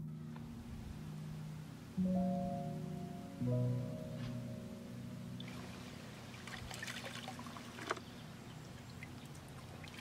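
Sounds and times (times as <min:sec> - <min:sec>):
water pouring into a pond: 0:05.4 - 0:08.0, 0:08.7 - 0:10.0.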